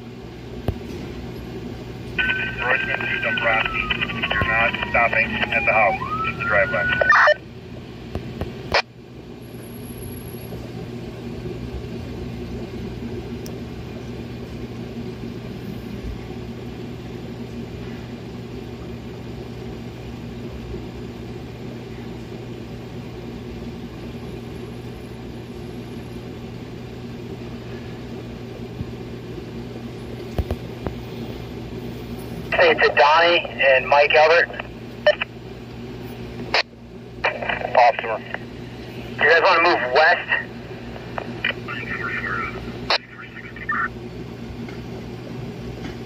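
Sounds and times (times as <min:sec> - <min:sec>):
low mechanical hum: 0:00.0 - 0:46.0.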